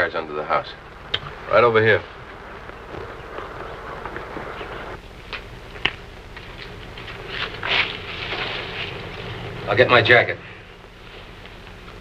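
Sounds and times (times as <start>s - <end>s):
rustle among shrubs: 0.0s - 9.8s
film soundtrack hiss and hum: 0.0s - 12.0s.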